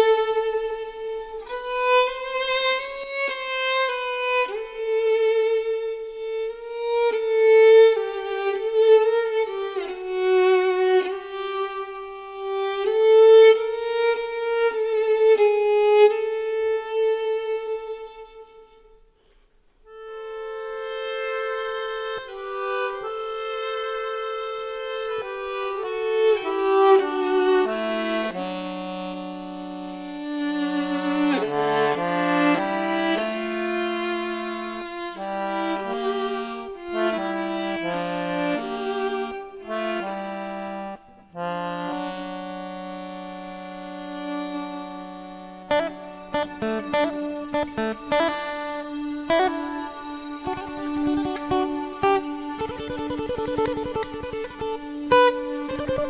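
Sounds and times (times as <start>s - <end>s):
lower violin part: 0.0s - 56.0s
violin slow melody: 0.0s - 56.0s.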